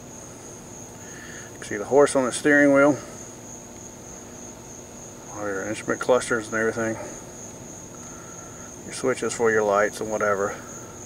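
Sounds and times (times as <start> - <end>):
steady high-pitched whine: 0.0 - 11.0.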